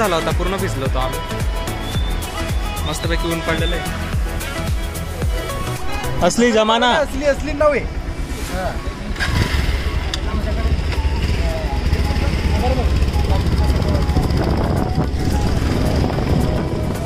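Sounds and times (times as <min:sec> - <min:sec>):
motorcycles rumbling: 0:00.0 - 0:17.0
people talking: 0:05.9 - 0:14.6.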